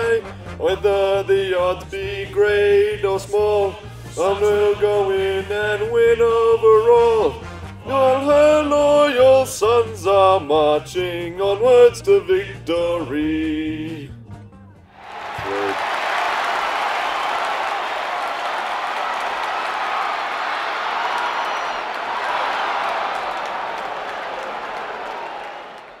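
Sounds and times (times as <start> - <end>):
crowd cheering and applauding: 15.0 - 26.0.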